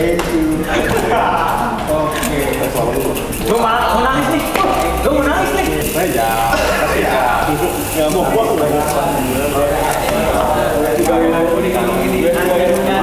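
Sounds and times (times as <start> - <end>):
background music: 0.0 - 13.0
indistinct voices talking: 0.0 - 13.0.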